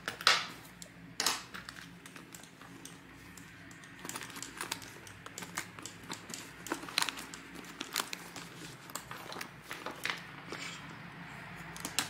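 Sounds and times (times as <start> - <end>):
items clicking inside bag: 1.2 - 10.3.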